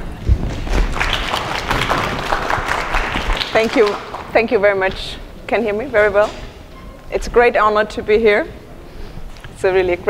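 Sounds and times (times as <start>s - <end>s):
audience applauding: 0.4s - 4.4s.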